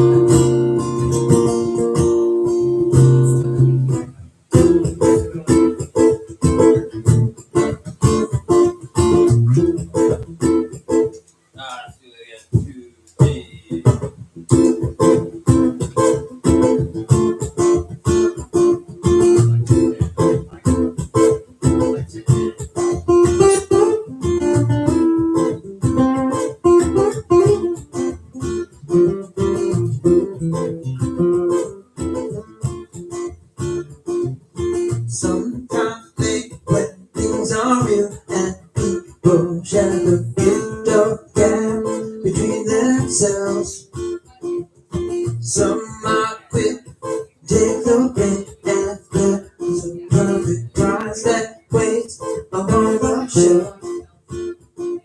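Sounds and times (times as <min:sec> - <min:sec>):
acoustic guitar strumming: 0:00.0 - 0:11.9, 0:12.5 - 0:55.0.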